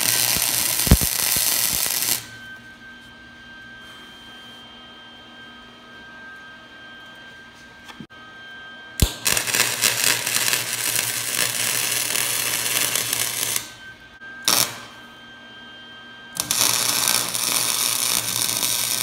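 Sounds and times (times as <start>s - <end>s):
welding arc crackling: 0.0s - 2.3s, 9.0s - 13.8s, 14.5s - 15.0s, 16.4s - 19.0s.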